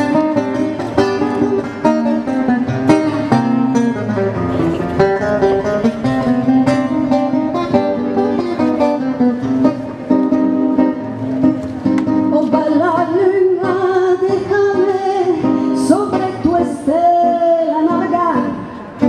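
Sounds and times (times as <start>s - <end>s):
acoustic guitar playing: 0.0s - 19.0s.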